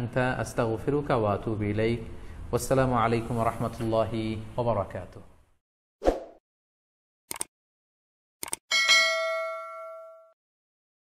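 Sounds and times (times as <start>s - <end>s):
notification bell ding: 8.7s - 10.4s.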